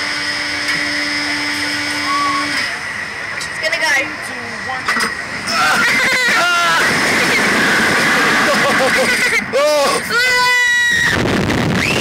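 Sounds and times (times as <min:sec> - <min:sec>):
people screaming and laughing: 0:05.4 - 0:10.1
wind rushing across microphone: 0:10.9 - 0:12.0.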